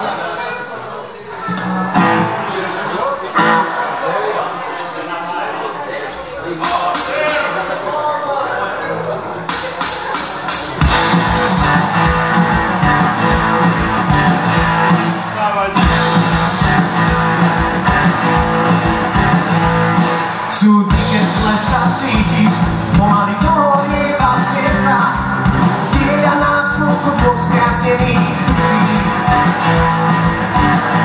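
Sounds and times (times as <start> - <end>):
electric guitars: 1.4 - 4.0, 9.5 - 31.0
drums and bass beat: 6.6 - 7.6, 9.5 - 31.0.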